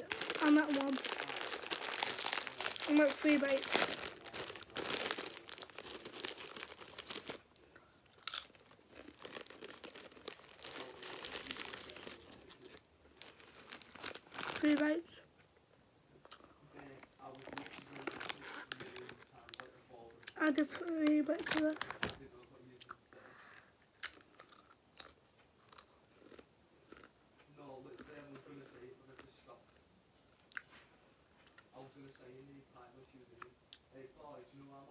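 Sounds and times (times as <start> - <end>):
foil packet crinkling: 0.0 - 7.5, 8.1 - 15.0, 17.2 - 19.7, 20.4 - 22.3
crisps crunching: 0.0 - 15.0, 16.3 - 22.3.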